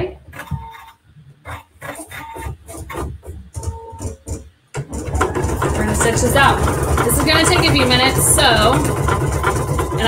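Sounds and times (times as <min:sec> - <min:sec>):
embroidery machine knocking: 0:02.4 - 0:10.0.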